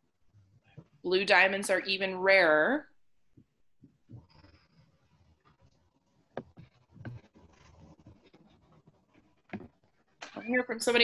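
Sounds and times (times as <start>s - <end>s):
faint scratching and rustling: 3.8s - 11.0s.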